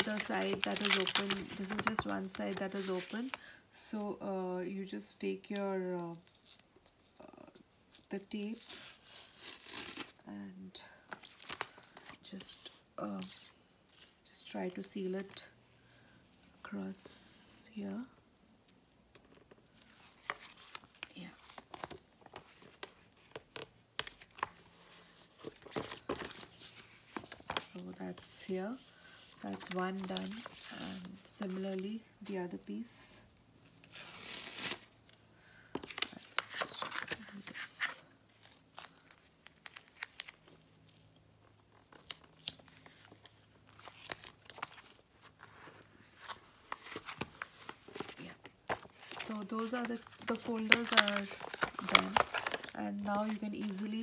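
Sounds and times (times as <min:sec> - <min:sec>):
plastic sheet crinkling: 0:00.0 - 0:03.4, 0:41.7 - 0:54.0
tape and plastic crackling: 0:00.0 - 0:03.5, 0:33.7 - 0:54.0.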